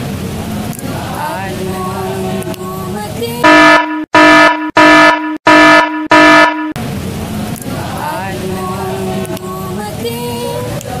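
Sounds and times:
air horn blasts: 3.4s - 6.8s.

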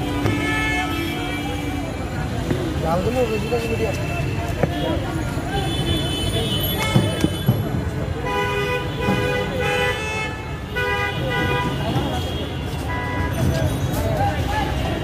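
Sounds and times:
vehicle horns honking: 0.0s - 1.9s, 3.2s - 13.9s
voices: 0.0s - 10.2s, 10.9s - 15.0s
traffic din: 0.0s - 15.0s.

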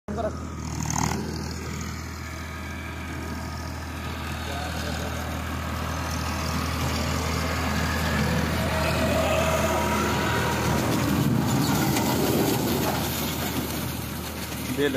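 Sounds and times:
tractor diesel engine running: 0.1s - 14.9s.

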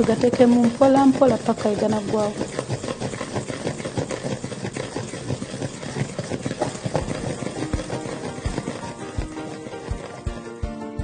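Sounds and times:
electric mixer whirring: 0.0s - 11.0s.

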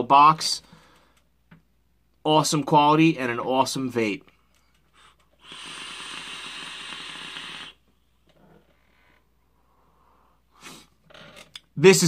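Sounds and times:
faint exhale: 5.0s - 7.8s
air hissing through vape: 5.0s - 7.9s
vape coil crackling: 5.0s - 8.4s.

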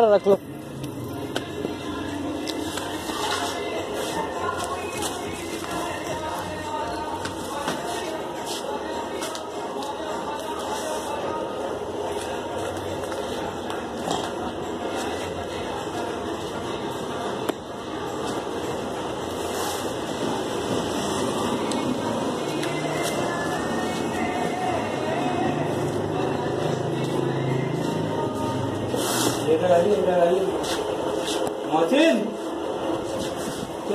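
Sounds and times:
steady noisy hum: 0.0s - 33.9s
indistinct background voices: 0.4s - 33.9s.

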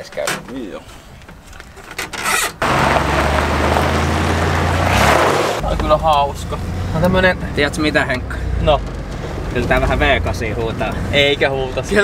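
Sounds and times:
tyres crunching on gravel: 1.3s - 6.0s
truck engine running: 2.6s - 10.2s.

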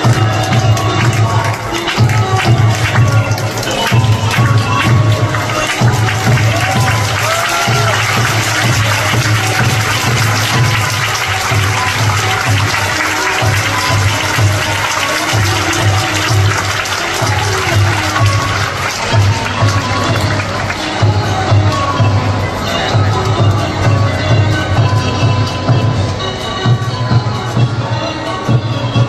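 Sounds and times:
audience applause: 0.0s - 21.8s.

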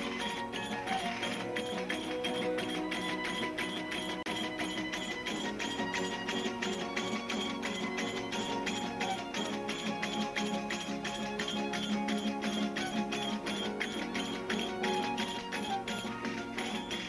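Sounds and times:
jingling percussion beat: 0.0s - 17.0s
strummed guitars: 0.0s - 17.0s
violin: 0.0s - 17.0s.

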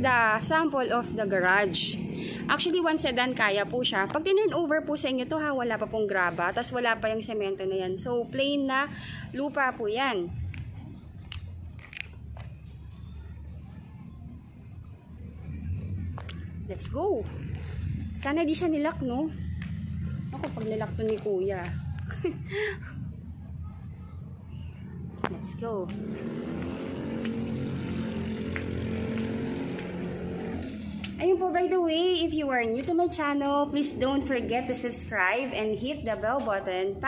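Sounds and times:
steady engine drone: 8.7s - 37.0s.

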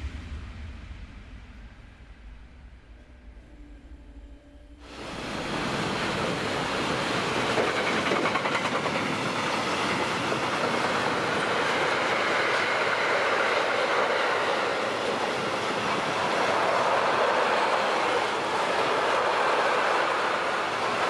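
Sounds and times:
steel wheels rushing on rail: 0.0s - 21.0s.

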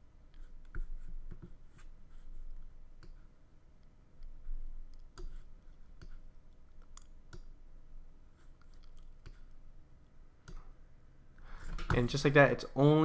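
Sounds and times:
computer mouse clicks: 3.0s - 3.2s, 3.8s - 6.2s, 6.8s - 7.6s, 8.6s - 9.6s, 10.4s - 10.7s.

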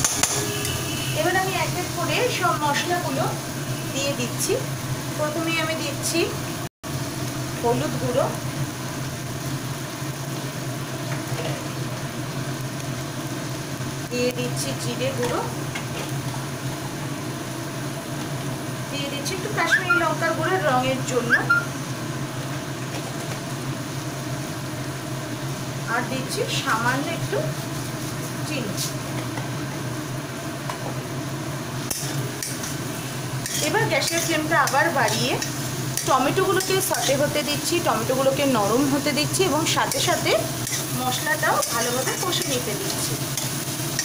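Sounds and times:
food hissing in oil: 0.0s - 44.0s
gas stove hum: 0.0s - 44.0s
light sizzle: 0.0s - 44.0s
spatula scraping in pan: 31.8s - 37.4s, 39.8s - 44.0s.

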